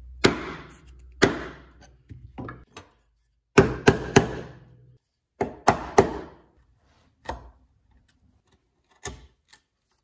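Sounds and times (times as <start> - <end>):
chisel chopping into wood: 0.2 - 1.7, 3.6 - 4.6, 5.4 - 6.4.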